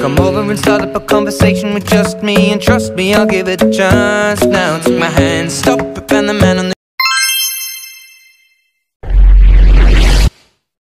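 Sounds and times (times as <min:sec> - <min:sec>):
pop song with singing: 0:00.0 - 0:06.8
bright chime: 0:07.0 - 0:08.8.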